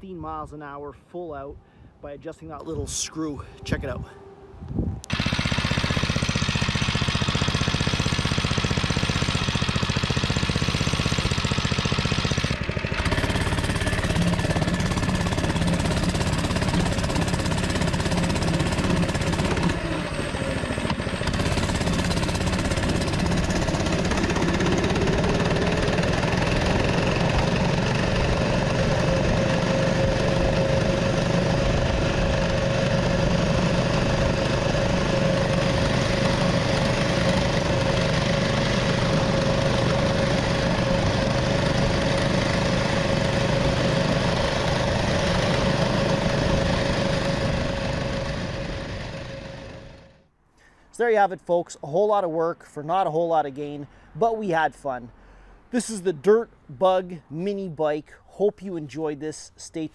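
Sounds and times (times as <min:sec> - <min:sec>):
mini bike engine at full throttle: 0:05.1 - 0:50.3.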